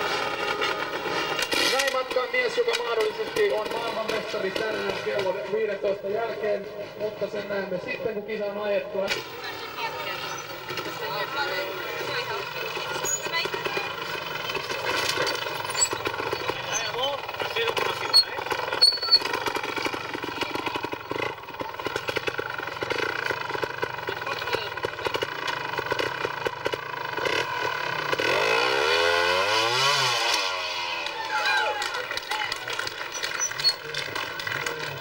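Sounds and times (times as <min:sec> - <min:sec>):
motorcycle engine at low revs: 0:09.0 - 0:31.2.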